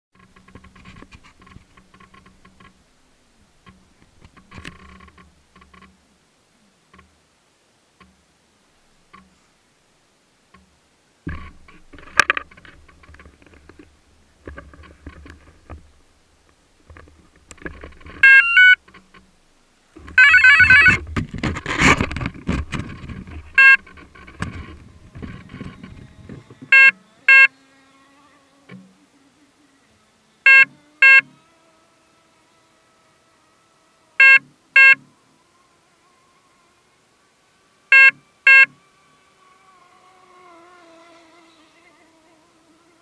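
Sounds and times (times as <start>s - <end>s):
faint steady hum: 0.2s - 43.0s
electronic beeps: 18.2s - 18.8s, 20.2s - 21.0s, 23.6s - 23.8s, 26.7s - 27.5s, 30.5s - 31.3s, 34.2s - 35.0s, 37.9s - 38.8s
warbling electronic tones: 18.2s - 18.8s, 20.2s - 21.0s, 23.5s - 23.9s, 25.4s - 27.6s
handling knocks and rustles: 20.9s - 26.7s.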